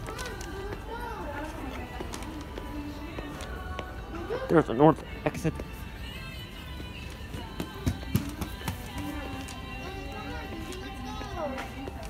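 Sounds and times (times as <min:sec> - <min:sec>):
background music with singing: 0:00.0 - 0:12.0.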